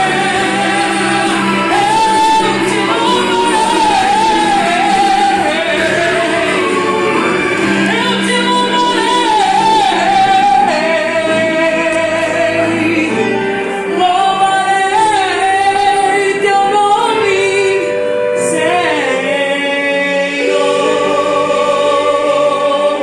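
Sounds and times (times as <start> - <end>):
woman singing gospel: 0.0 - 7.0, 7.8 - 23.0
accompanying music: 0.0 - 23.0.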